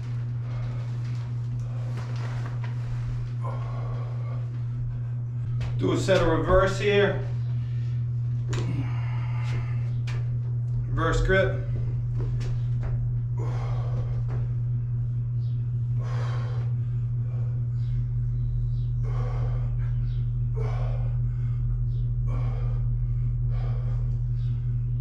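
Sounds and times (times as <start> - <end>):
steady low hum: 0.0 - 25.0
man breathing hard: 0.2 - 5.7, 7.3 - 10.2, 12.8 - 15.0, 15.7 - 25.0.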